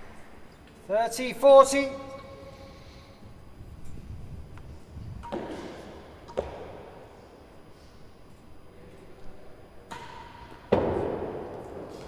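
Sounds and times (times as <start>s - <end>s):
tennis ball knocks in echoing court: 5.2s - 7.0s, 9.9s - 12.0s.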